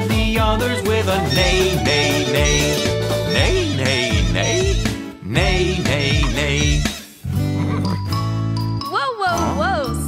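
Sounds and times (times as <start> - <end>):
cheerful children's song music: 0.0 - 10.0.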